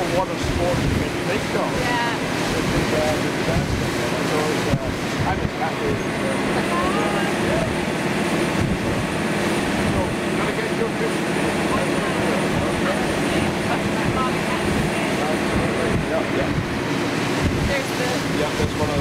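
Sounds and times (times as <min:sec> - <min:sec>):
boat engine droning: 0:00.0 - 0:19.0
rush of boat wake: 0:00.0 - 0:19.0
wind on microphone: 0:00.0 - 0:19.0.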